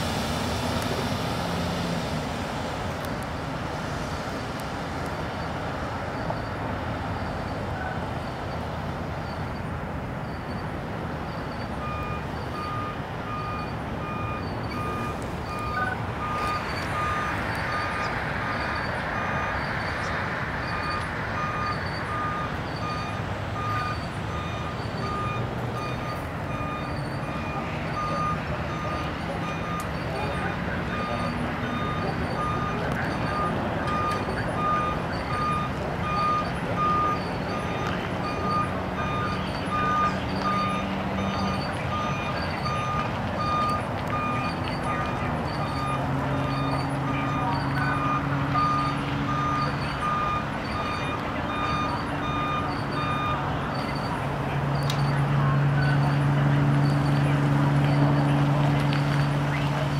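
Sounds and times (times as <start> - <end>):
diesel engine running: 0.0 - 59.9
truck reversing alarm beeping: 5.3 - 59.9.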